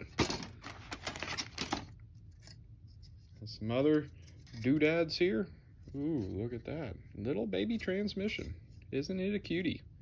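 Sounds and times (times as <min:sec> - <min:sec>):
plastic parts clattering: 0:00.0 - 0:02.6.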